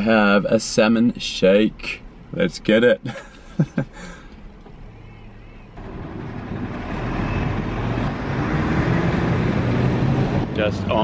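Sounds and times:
person laughing: 3.0s - 4.2s
cars driving past: 5.7s - 11.0s.

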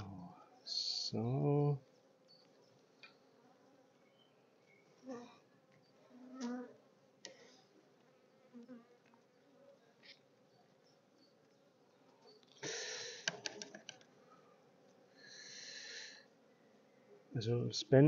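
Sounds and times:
honeybees buzzing: 0.0s - 13.4s.

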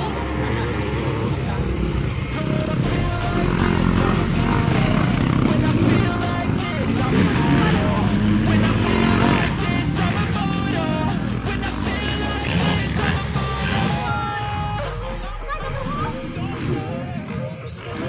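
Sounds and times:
background music: 0.0s - 18.0s
dirt bike engines revving: 0.0s - 18.0s.

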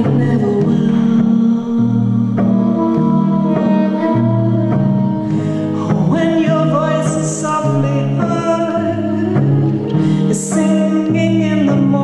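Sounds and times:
woman singing: 0.0s - 5.0s, 5.8s - 12.0s
acoustic guitar strumming: 0.0s - 12.0s.

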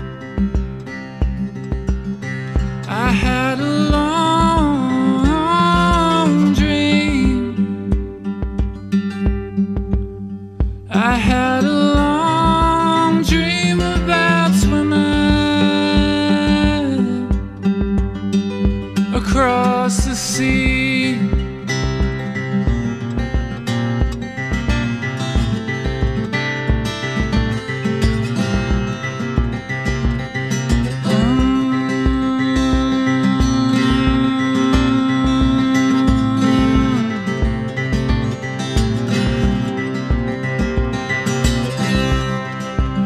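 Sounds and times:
acoustic guitar playing: 0.0s - 43.0s.

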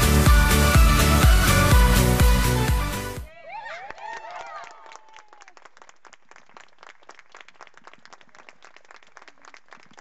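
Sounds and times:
audience applauding: 3.6s - 10.0s.

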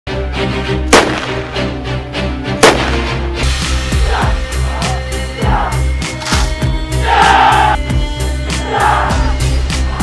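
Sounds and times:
background music: 0.1s - 10.0s
loud gunshot: 0.9s - 1.5s, 2.6s - 3.2s.

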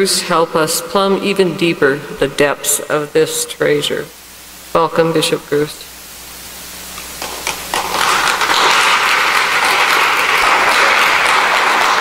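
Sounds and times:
audience applauding: 7.2s - 12.0s.

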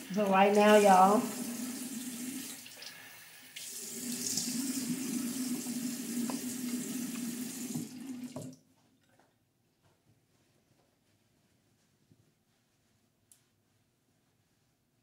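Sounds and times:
water running from sink tap: 0.0s - 8.6s.

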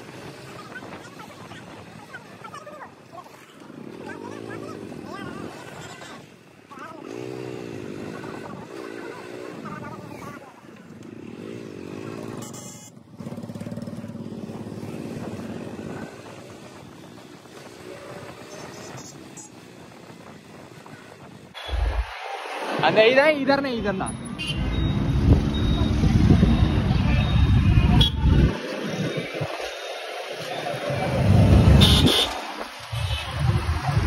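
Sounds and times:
people's voices: 0.0s - 11.2s, 20.7s - 34.0s
motorcycle engine running: 13.0s - 15.7s.

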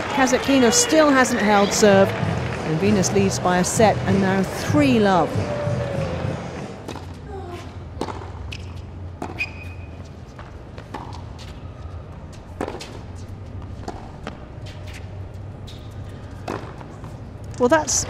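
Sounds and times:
tennis ball struck with rackets: 16.4s - 17.2s.

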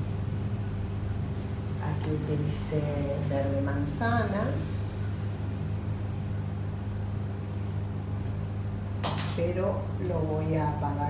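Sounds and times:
low electrical hum: 0.0s - 11.0s
woman talking: 1.8s - 4.8s, 9.3s - 11.0s.

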